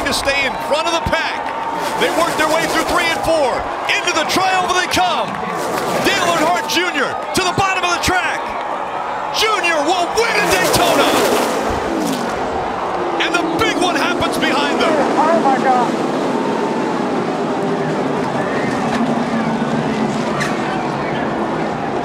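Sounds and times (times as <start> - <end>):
excited voices: 0.0 - 20.1
crowd noise: 0.0 - 22.0
race car engines passing: 0.0 - 22.0.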